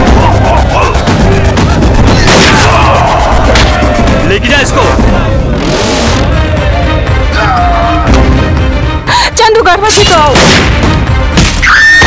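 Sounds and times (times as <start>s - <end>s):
dramatic bass-heavy music: 0.0s - 11.8s.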